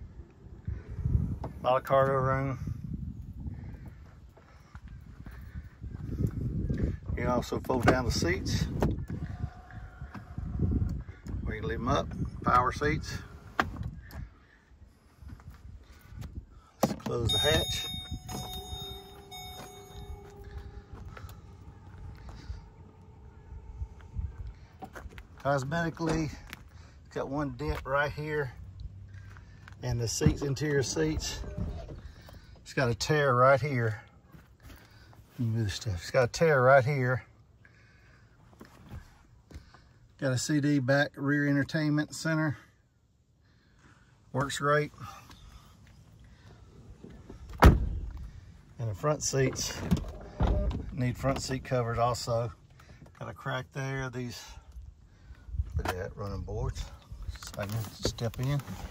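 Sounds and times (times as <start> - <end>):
footsteps: 17.8 - 23.3
car door thudding shut: 47.5 - 48.1.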